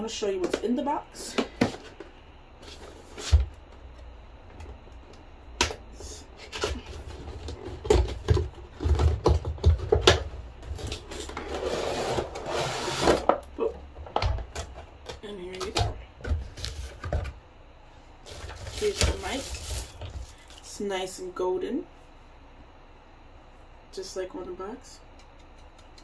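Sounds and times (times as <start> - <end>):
packaging rustling: 18.2 - 20.6.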